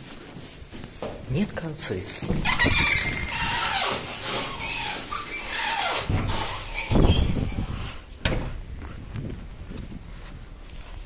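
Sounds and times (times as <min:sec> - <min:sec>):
doors squealing on hinges: 0:02.3 - 0:08.4
heavy thud: 0:08.2 - 0:08.7.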